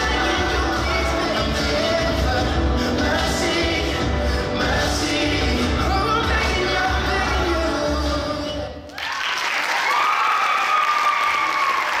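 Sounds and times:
recorded song: 0:00.0 - 0:09.1
audience applause: 0:08.9 - 0:12.0
long held cheer: 0:08.9 - 0:12.0.

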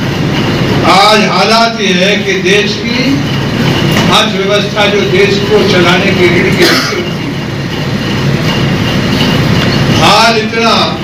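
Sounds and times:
loud rumbling noise: 0:00.0 - 0:11.0.

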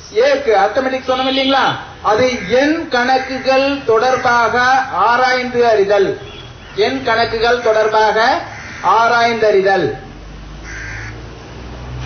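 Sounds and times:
harsh bird call: 0:07.6 - 0:09.2.

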